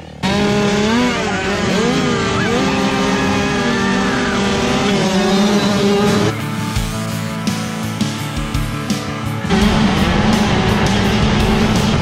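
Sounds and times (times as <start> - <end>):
motocross bikes revving: 0.0 - 12.0.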